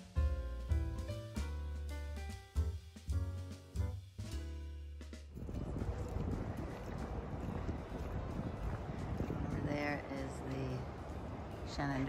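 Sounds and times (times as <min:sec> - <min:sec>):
wind buffeting microphone: 0:05.3 - 0:12.0.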